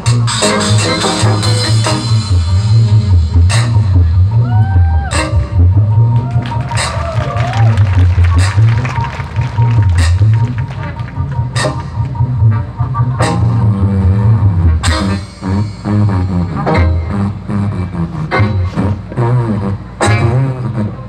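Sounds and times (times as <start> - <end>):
jazz band playing: 0.0 - 21.0
low bass line: 0.0 - 21.0
sliding melody notes: 7.8 - 21.0.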